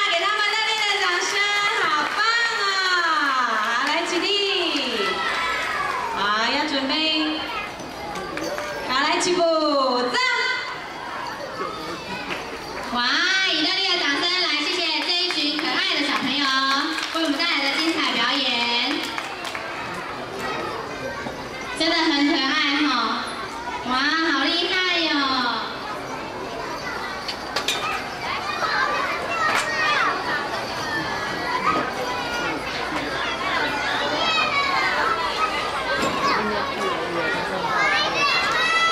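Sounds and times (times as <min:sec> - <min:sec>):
children talking and calling out: 0:00.0 - 0:38.9.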